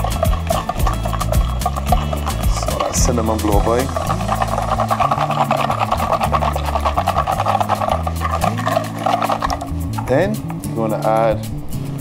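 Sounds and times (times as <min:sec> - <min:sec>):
whisk beating in glass bowl: 0:00.0 - 0:10.1
whisk wires clicking on glass: 0:00.0 - 0:10.6.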